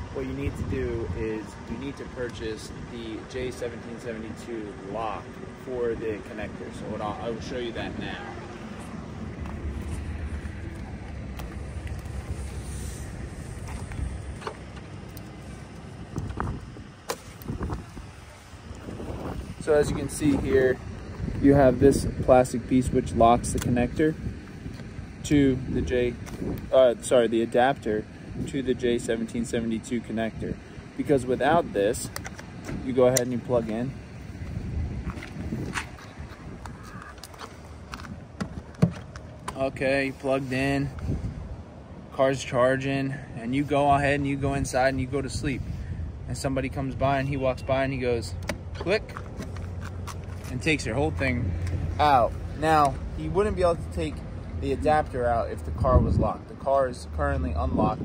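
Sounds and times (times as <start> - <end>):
low wind rumble: 0.0 - 58.0.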